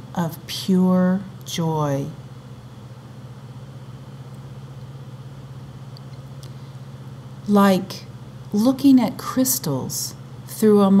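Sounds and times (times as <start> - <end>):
low pulsing hum: 0.0 - 11.0.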